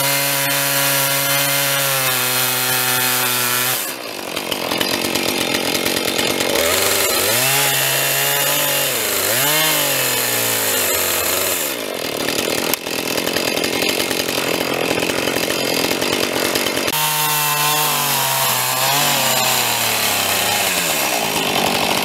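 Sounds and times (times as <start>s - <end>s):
chainsaw cutting log: 0.0s - 22.0s.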